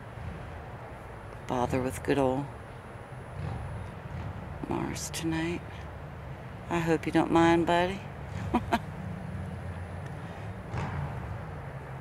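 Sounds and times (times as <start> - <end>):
low background rumble: 3.2 - 12.0
man laughing: 8.4 - 8.9.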